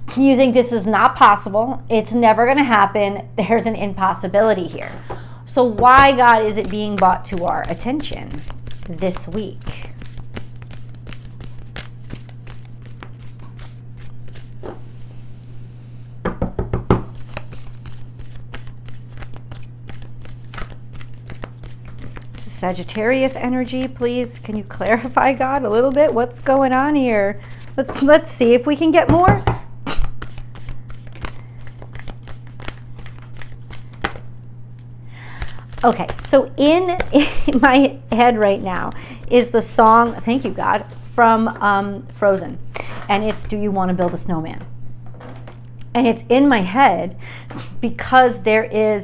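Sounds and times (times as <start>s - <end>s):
cards shuffling: 5.8s - 15.0s, 17.1s - 28.1s, 29.9s - 34.3s, 35.2s - 37.7s
deck knocking on table: 16.2s - 17.1s.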